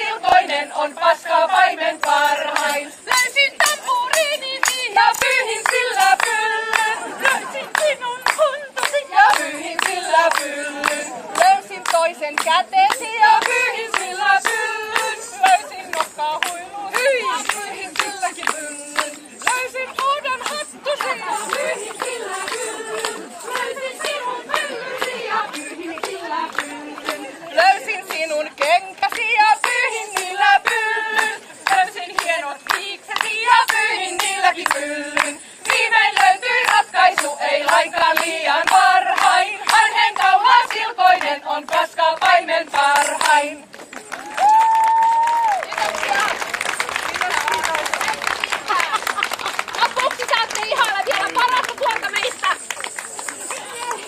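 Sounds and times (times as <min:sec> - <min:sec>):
women singing unaccompanied: 0:00.0 - 0:43.8, 0:49.8 - 0:52.6
hands clapping: 0:01.9 - 0:54.0.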